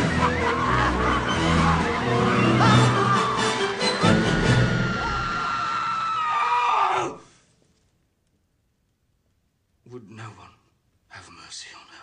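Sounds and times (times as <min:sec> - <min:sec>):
woman screaming high: 0:04.7 - 0:07.2.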